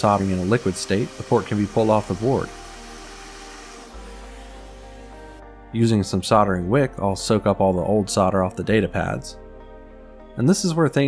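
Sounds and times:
hiss of hot air nozzle: 0:00.0 - 0:05.4
soft background music: 0:00.0 - 0:11.0.

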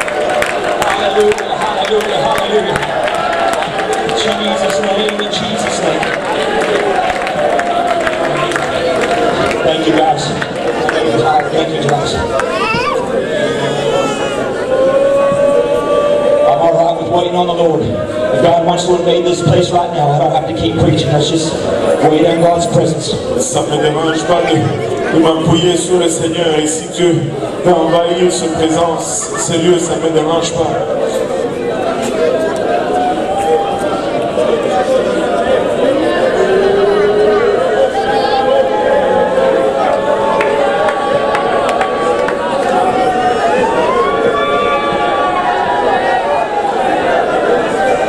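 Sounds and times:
congregation praying aloud: 0:00.0 - 0:48.0
man speaking over sound system: 0:00.7 - 0:03.1, 0:03.9 - 0:06.7, 0:09.4 - 0:12.4, 0:16.4 - 0:31.3.

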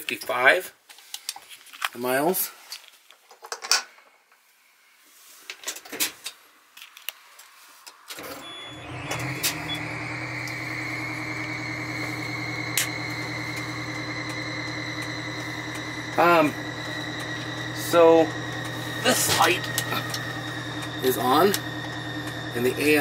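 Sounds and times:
diesel engine starting and idling: 0:08.2 - 0:23.0
thin high whine: 0:08.2 - 0:23.0.

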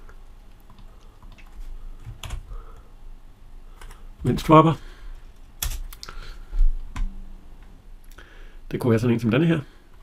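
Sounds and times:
computer keyboard typing: 0:00.5 - 0:02.4.

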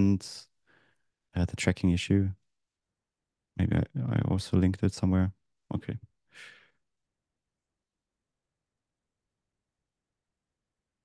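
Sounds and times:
person exhaling: 0:06.3 - 0:06.7.

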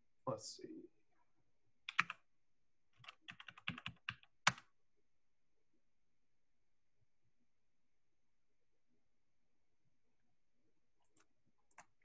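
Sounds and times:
computer keyboard typing: 0:01.9 - 0:02.2, 0:03.0 - 0:04.7.

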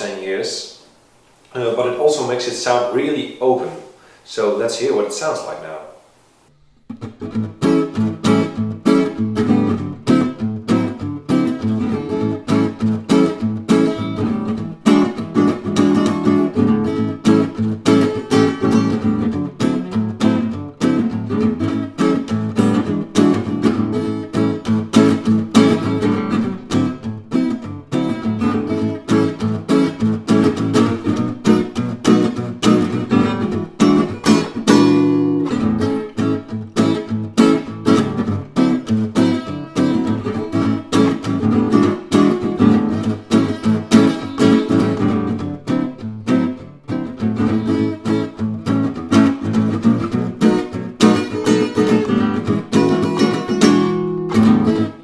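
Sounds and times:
acoustic guitar playing: 0:00.0 - 0:55.0.

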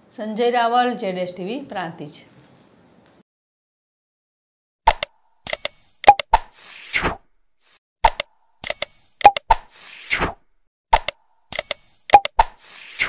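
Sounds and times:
sharp clicks: 0:04.9 - 0:06.4, 0:08.0 - 0:09.6, 0:10.9 - 0:12.5.

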